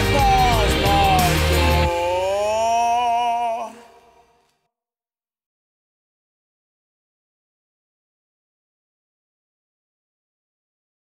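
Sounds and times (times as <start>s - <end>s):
man singing long wavering note: 0.0s - 4.3s.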